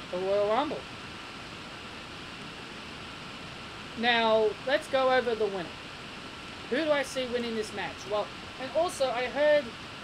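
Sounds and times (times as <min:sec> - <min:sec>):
microphone hiss: 0:00.0 - 0:10.0.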